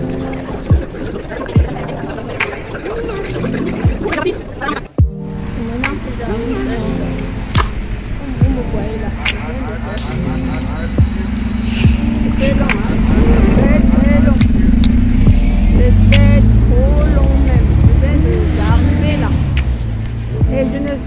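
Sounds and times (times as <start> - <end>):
background music with singing: 0.0 - 21.0
loud low rumble: 5.0 - 21.0.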